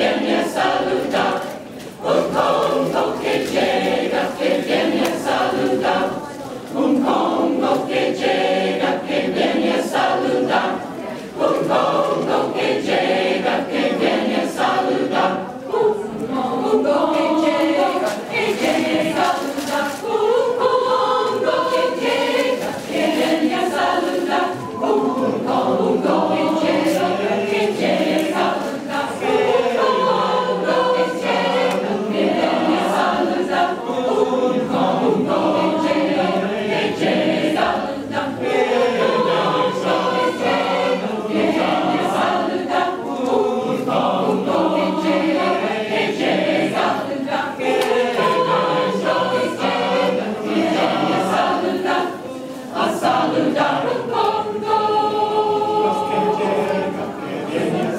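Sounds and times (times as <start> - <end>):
mixed choir singing: 0.0 - 57.9.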